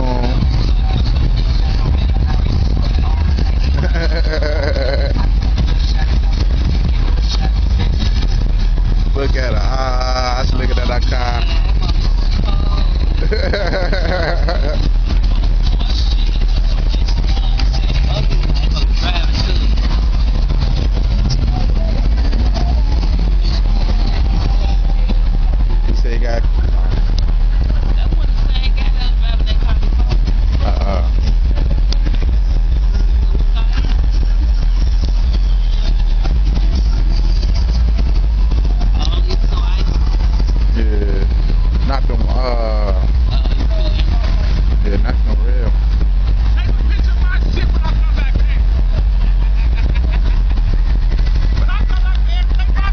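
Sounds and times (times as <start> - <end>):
cars passing slowly: 0.0 - 52.9
crowd voices: 0.0 - 52.9
low rumble: 0.0 - 52.9.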